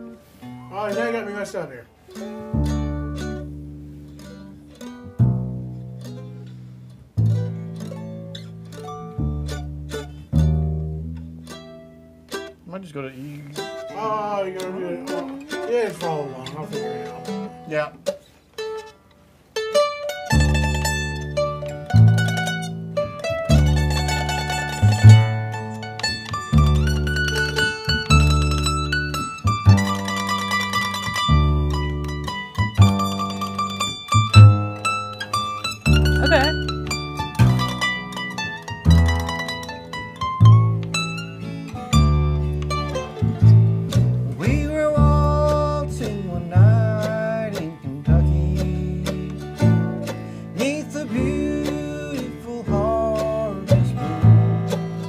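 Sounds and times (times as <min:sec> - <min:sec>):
acoustic guitar strumming: 0:00.0 - 0:55.0
mandolin melody: 0:00.0 - 0:55.0
plucked upright bass: 0:00.0 - 0:55.0.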